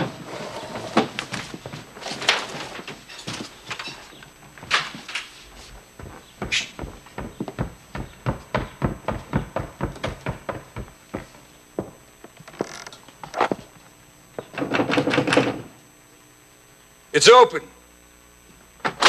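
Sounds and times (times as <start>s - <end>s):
boot footsteps on wooden stairs: 5.6s - 13.7s.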